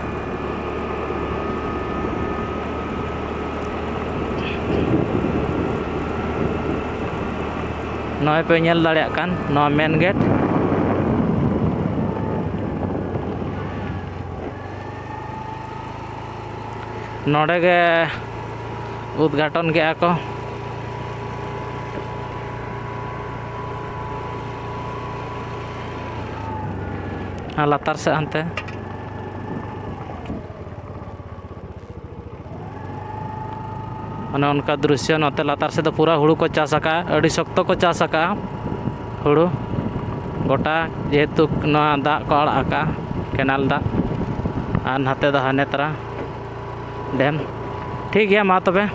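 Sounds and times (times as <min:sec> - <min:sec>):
vehicle engine running: 0:00.0 - 0:48.9.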